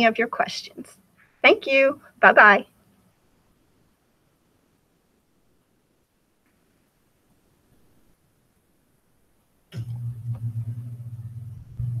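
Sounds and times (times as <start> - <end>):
steady low hum: 9.7 - 12.0.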